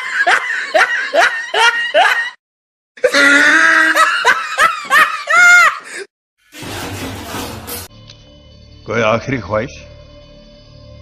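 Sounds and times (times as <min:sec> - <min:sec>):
young man laughing loudly: 0:00.0 - 0:02.4, 0:03.0 - 0:06.0.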